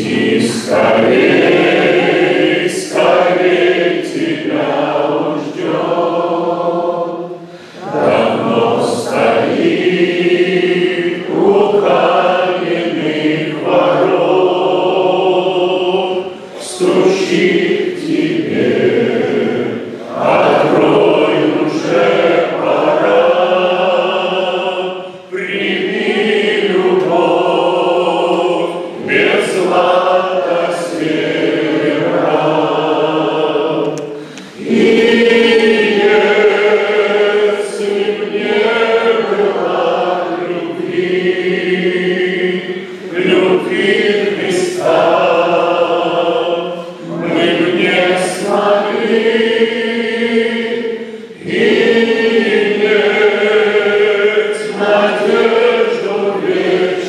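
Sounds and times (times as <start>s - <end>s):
men singing a hymn: 0.0s - 57.0s.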